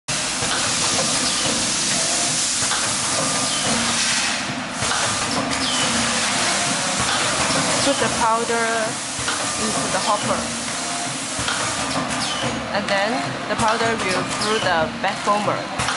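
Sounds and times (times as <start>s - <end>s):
loud hissing noise: 0.1s - 11.8s.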